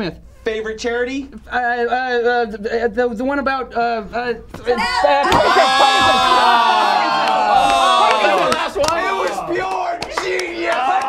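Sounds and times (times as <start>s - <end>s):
people laughing and shouting: 4.7s - 11.0s.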